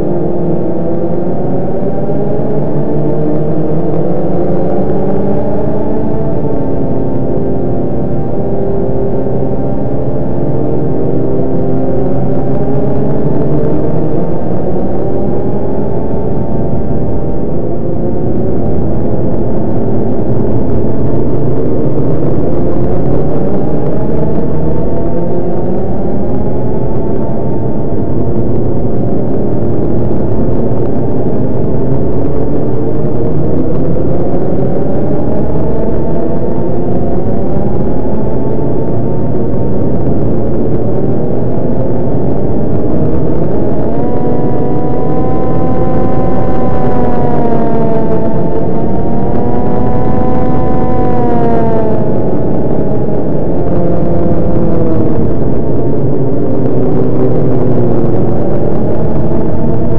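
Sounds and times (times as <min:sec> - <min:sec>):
electronic synthesizer drone: 0:00.0 - 0:59.9.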